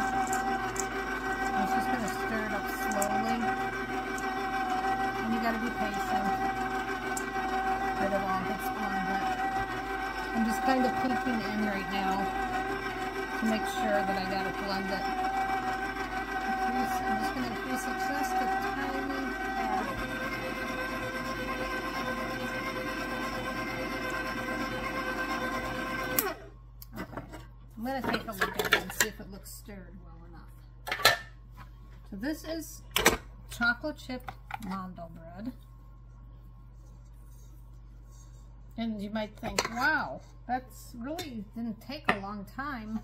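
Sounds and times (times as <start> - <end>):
stand mixer motor whine: 0.0 - 26.5.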